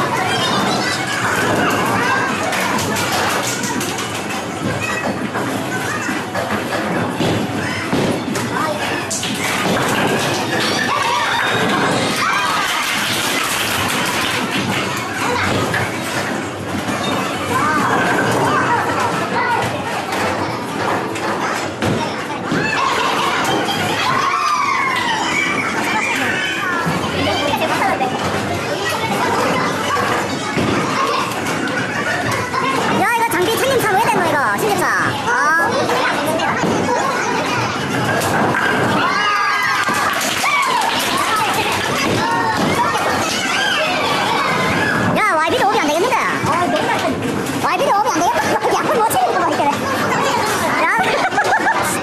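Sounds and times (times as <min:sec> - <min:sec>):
babble of chatter: 0:00.0 - 0:52.0
bowling balls rolling: 0:00.0 - 0:52.0.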